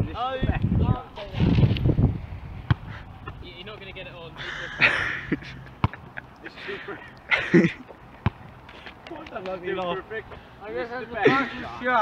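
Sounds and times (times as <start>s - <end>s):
voices: 2.9s - 12.0s
laughter: 4.4s - 7.8s, 11.2s - 11.7s.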